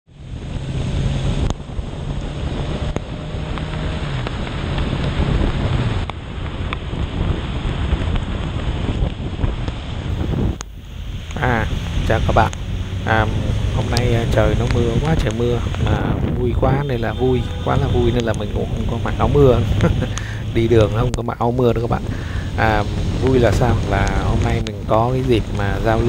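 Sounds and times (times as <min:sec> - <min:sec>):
motorcycle engine hum: 0:00.1 - 0:26.0
wind on microphone: 0:00.2 - 0:26.0
man talking: 0:11.3 - 0:26.0.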